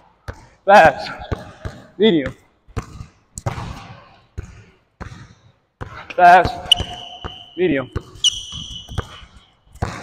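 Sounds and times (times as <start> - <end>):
basketball bouncing in gym: 0.0 - 10.0.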